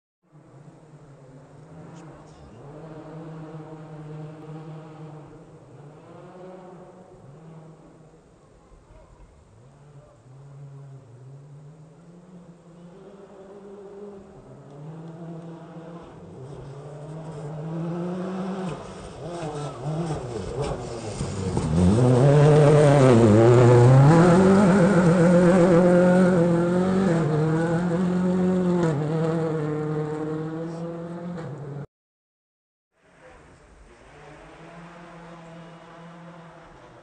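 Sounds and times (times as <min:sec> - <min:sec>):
rally car engine revving: 0:00.3 - 0:08.3, 0:09.1 - 0:31.9, 0:33.1 - 0:37.0.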